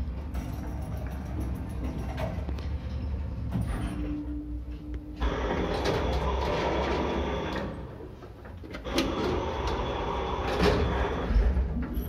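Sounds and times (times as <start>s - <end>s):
lift doors and mechanism running: 0.0s - 12.0s.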